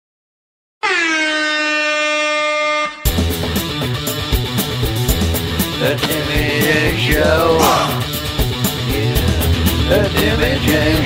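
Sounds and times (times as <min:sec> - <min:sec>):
air horn blast: 0:00.8 - 0:03.2.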